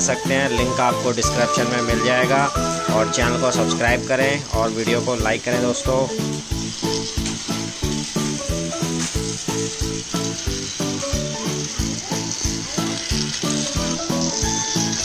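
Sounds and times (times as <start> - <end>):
toy trains rattling and whirring: 0.0 - 15.0.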